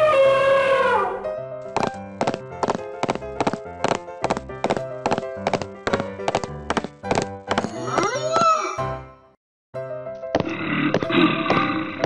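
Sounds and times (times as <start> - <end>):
background music: 0.1 - 12.0
cartoon clip-clop footsteps: 1.6 - 8.6.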